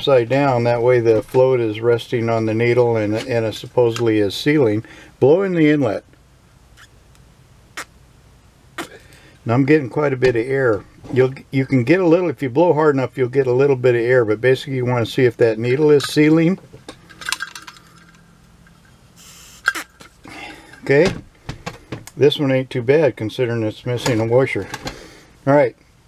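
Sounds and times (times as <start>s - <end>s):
sharp mouth sound: 7.8s - 8.0s, 8.8s - 9.2s
breath blown into carburetor: 19.2s - 20.6s.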